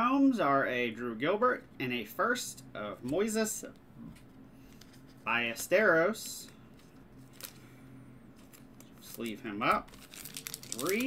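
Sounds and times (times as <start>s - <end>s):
card rustling in plastic sleeve: 4.6s - 11.0s.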